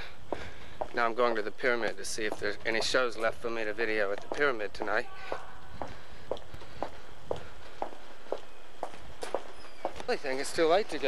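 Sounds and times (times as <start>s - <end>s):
footsteps on sidewalk: 0.0s - 11.0s.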